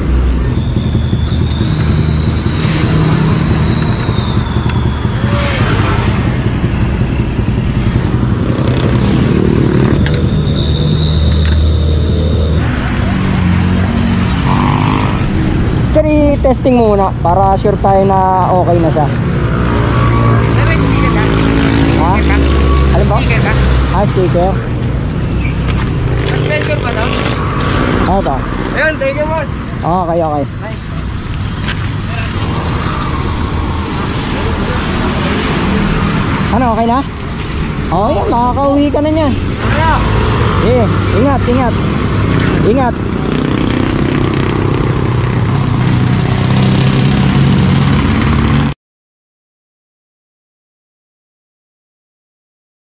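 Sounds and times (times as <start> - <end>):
motorcycle engine running: 0.0 - 11.0
road traffic noise: 0.0 - 48.8.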